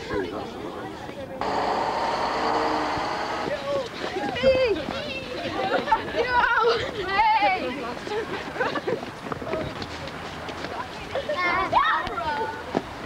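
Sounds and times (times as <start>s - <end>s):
young people talking and calling: 0.0s - 13.0s.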